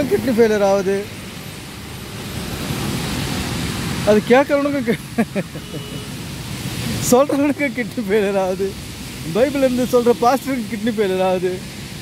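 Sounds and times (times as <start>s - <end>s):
traffic on wet street: 0.0s - 12.0s.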